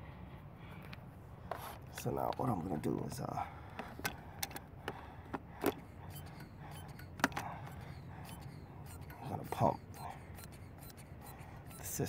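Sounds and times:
hand vacuum pump clicks: 3.7s - 12.0s.

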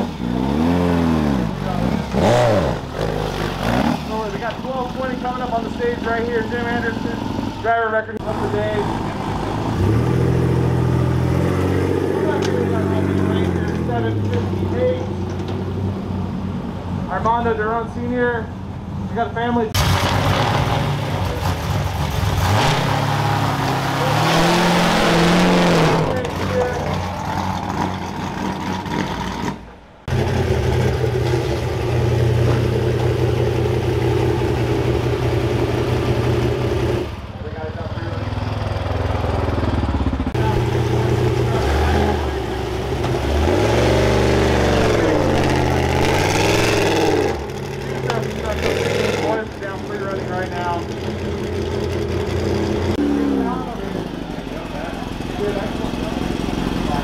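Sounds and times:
truck engine revving: 0.0s - 17.6s, 19.7s - 57.0s
voices: 1.4s - 9.9s, 11.2s - 19.8s, 26.0s - 27.5s, 37.2s - 39.2s, 47.6s - 51.8s, 52.9s - 57.0s.

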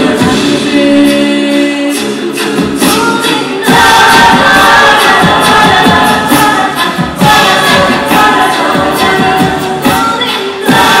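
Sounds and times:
women singing a cappella: 0.0s - 11.0s.

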